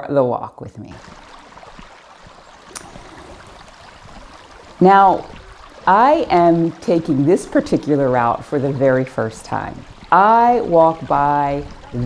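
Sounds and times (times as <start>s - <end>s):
small stream rushing: 0.9s - 12.0s.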